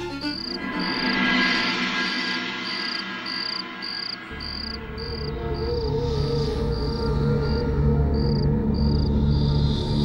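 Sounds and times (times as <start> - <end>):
low music drone: 0.0 - 10.0
crickets chirping: 0.3 - 10.0.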